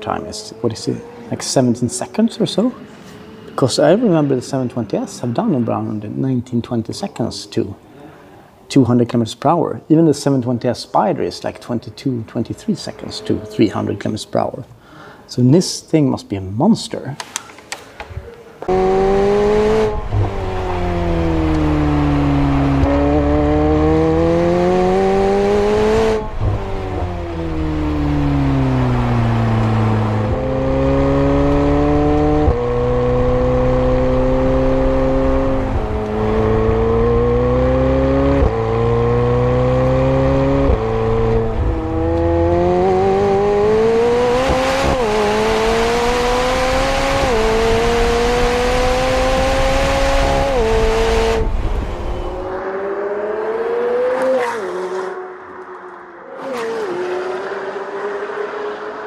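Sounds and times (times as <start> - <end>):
gear upshifts: 18.2 - 58.9
sports car engine revving: 18.6 - 55.6.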